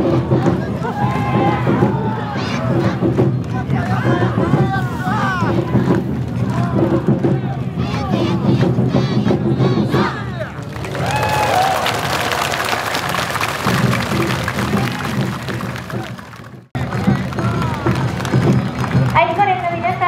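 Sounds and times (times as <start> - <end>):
festival band music: 0.0 - 20.0
crowd cheering and applauding: 0.2 - 7.8, 10.1 - 20.0
dancers shouting calls: 7.6 - 10.5.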